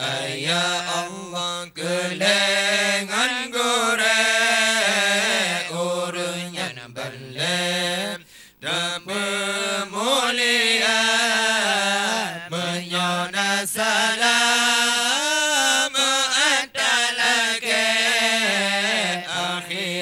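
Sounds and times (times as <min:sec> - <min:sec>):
men chanting into microphones: 0:00.0 - 0:20.0.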